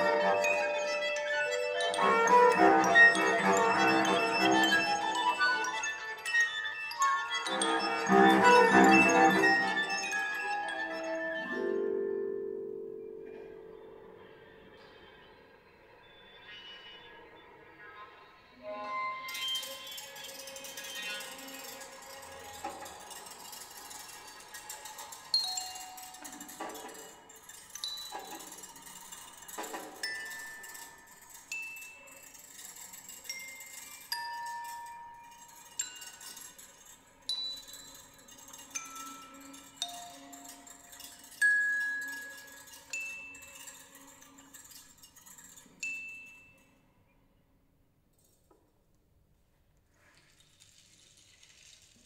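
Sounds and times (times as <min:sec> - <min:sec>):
bell-like struck notes: 0:00.0 - 0:15.0.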